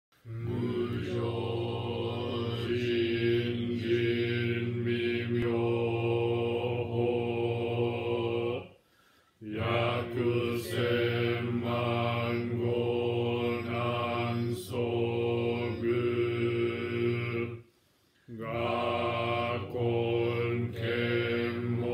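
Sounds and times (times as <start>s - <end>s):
man chanting on one pitch: 0.2s - 8.7s, 9.4s - 17.6s, 18.3s - 21.9s.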